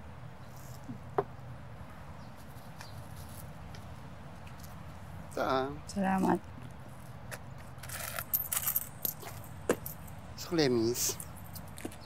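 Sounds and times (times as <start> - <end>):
coins jingling and clinking: 7.8 - 10.2.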